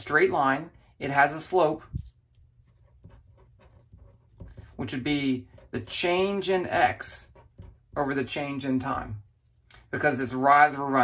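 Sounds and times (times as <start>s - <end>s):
pen scratching on paper: 0.6s - 8.5s.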